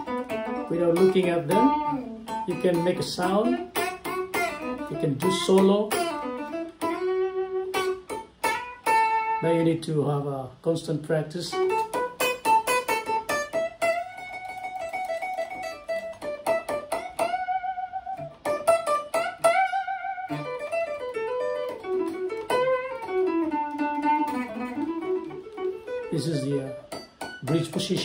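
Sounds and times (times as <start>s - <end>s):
electric guitar single-note lead: 0.0s - 10.3s, 11.0s - 28.0s.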